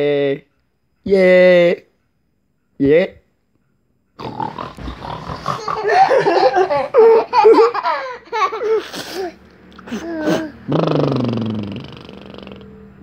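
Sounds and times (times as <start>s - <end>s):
people laughing loudly: 5.6s - 8.8s.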